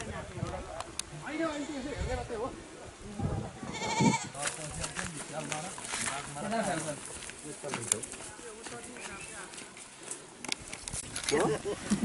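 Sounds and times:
goat bleating: 3.7s - 4.4s
people talking: 11.2s - 12.0s.

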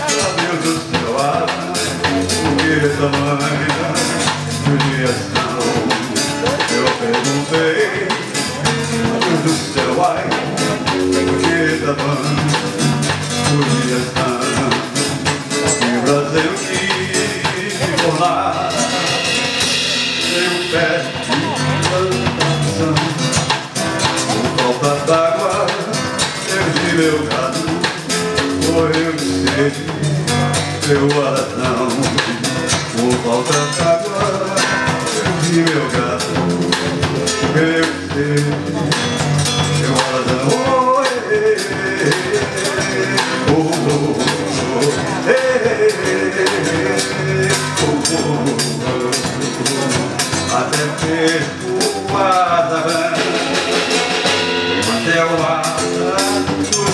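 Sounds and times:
acoustic guitar: 0.0s - 56.9s
electric bass: 0.0s - 56.9s
steady percussion beat: 0.0s - 56.9s.

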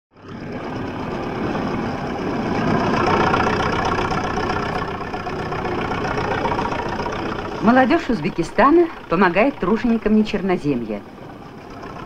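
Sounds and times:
bulldozer engine running: 0.1s - 12.0s.

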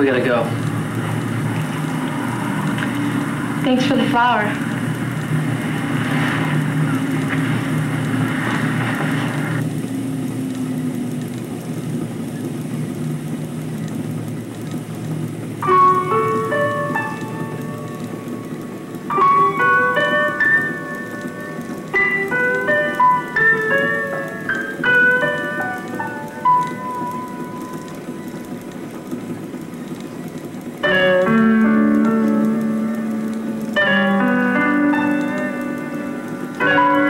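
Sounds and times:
noisy hiss and low rumble: 0.0s - 37.0s
solo piano music: 15.4s - 37.0s.

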